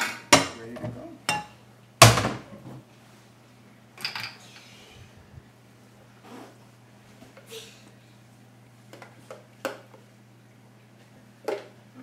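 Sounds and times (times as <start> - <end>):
dishes and cabinet clattering: 0.0 - 2.8.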